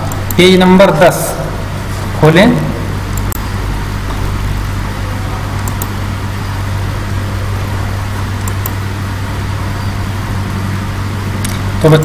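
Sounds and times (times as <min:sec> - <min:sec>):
electrical hum with hiss: 0:00.0 - 0:12.0.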